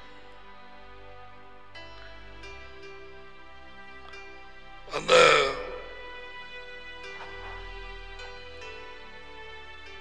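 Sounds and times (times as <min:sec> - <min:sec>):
soft background music: 0:00.0 - 0:10.0
person clearing throat: 0:04.9 - 0:06.0.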